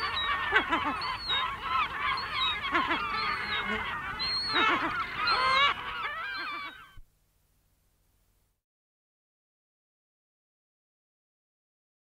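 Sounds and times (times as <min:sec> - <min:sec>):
chorus of gull chicks calling: 0:00.0 - 0:07.0
gull alarm calls: 0:00.0 - 0:07.0.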